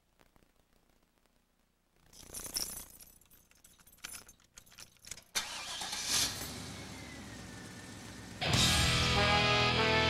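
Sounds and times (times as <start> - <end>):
keys jangling in ignition: 2.2 - 6.6
car engine starting and idling: 5.3 - 10.0.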